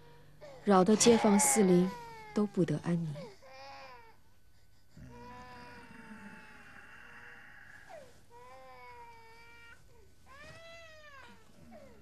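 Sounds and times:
infant crying: 0.4 - 2.6, 3.2 - 4.2, 5.0 - 12.0.

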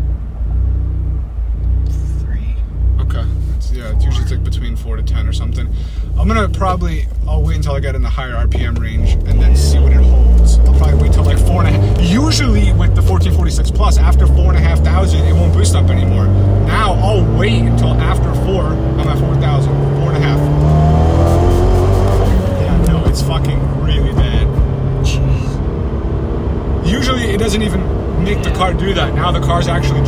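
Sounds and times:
car engine under load: 0.0 - 30.0
engine clicks and crackles: 22.1 - 25.5.

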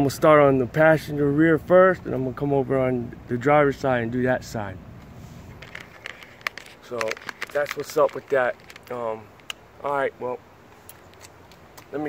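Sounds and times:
quiet outdoor background noise: 0.0 - 12.0
phone handling clicks and rustles: 5.5 - 10.1.

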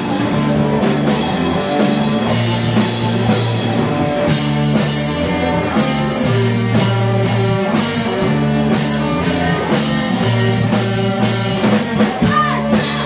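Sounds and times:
drum kit beat: 0.0 - 13.0
electric guitars: 0.0 - 13.0
person singing: 12.2 - 13.0.

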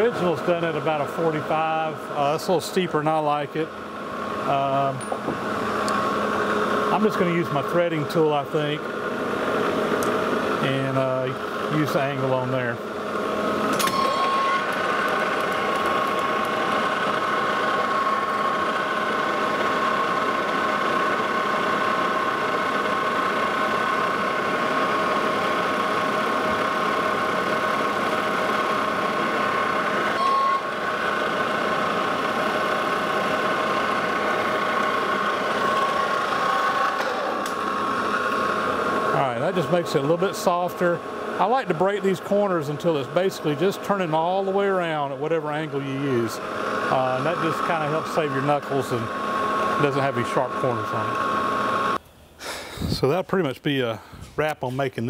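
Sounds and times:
metal lathe whining: 0.0 - 52.0.

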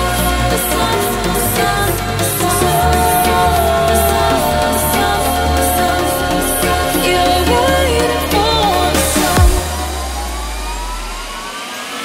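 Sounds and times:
rising synth sweep: 0.0 - 12.0.

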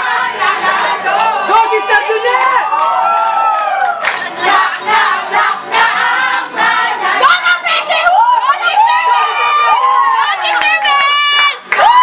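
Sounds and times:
chorus of voices chanting a cheer: 0.0 - 12.0.

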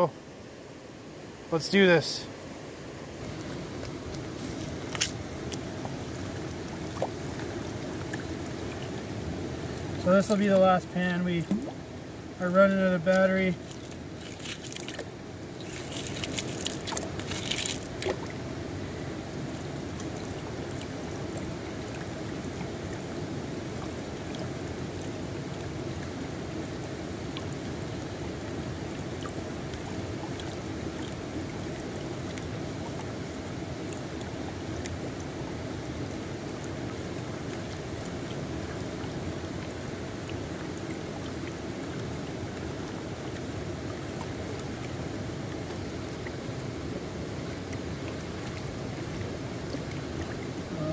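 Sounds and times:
creek water running: 0.0 - 50.9.

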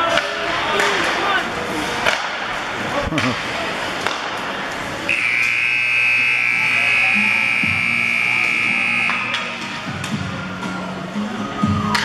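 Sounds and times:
arena buzzer tone: 5.1 - 9.6.

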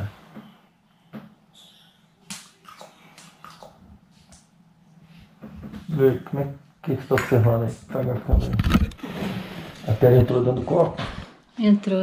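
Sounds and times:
camera handling thumps and rubbing: 8.3 - 9.0.

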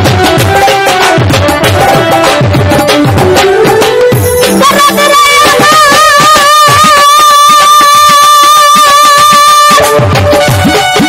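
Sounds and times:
hand drum beat: 0.0 - 7.1
person singing a long high note: 4.6 - 9.8.

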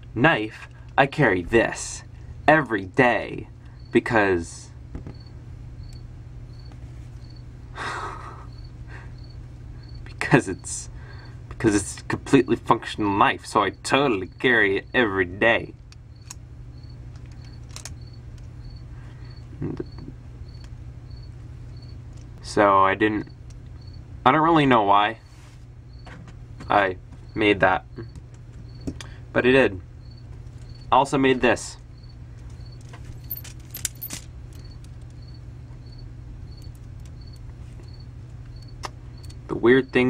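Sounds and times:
low steady hum: 0.0 - 40.0
cricket chirping: 3.3 - 13.3, 14.0 - 40.0
plastic pieces clicking and rattling: 17.1 - 18.0, 32.4 - 35.2.

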